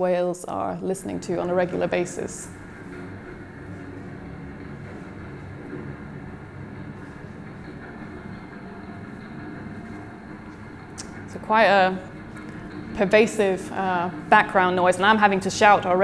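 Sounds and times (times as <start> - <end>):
faint steady hum: 0.0 - 16.0
low underwater ship rumble: 0.8 - 16.0.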